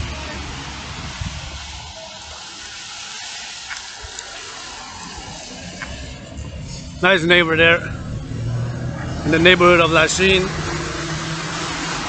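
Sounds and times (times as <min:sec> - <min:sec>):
low engine rumble: 0:00.0 - 0:12.0
steady traffic hiss: 0:00.0 - 0:12.0.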